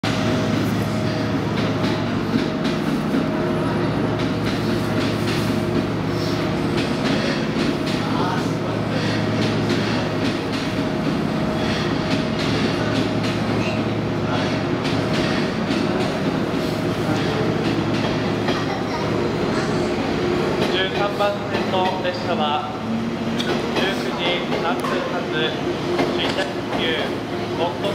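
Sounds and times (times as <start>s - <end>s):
train cars rumbling past: 0.0s - 27.9s.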